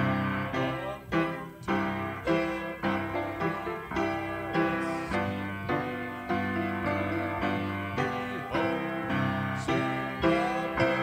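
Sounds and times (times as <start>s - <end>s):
piano playing slow chords: 0.0s - 11.0s.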